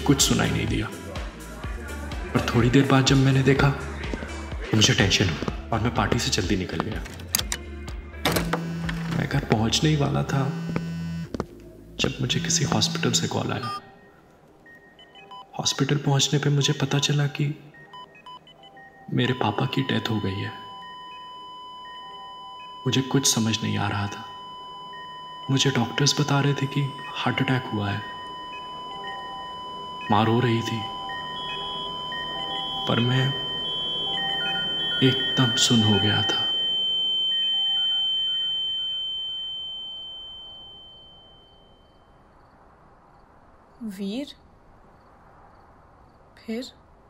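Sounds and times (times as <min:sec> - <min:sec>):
man's voice: 0:00.0 - 0:10.8, 0:12.0 - 0:13.8, 0:35.0 - 0:36.6
soft background music held tones: 0:00.0 - 0:42.6
faint high chime notes: 0:37.6 - 0:42.2.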